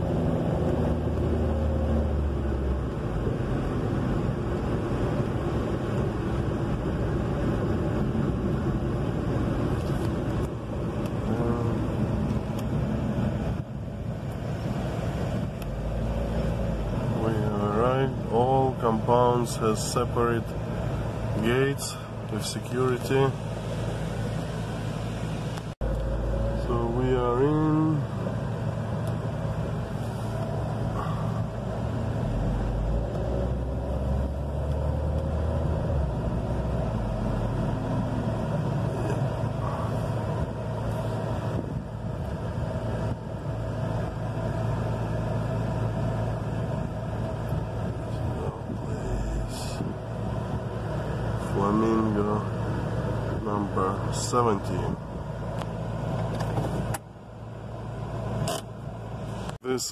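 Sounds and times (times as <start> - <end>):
engine and road rumble in car: 0.0 - 59.9.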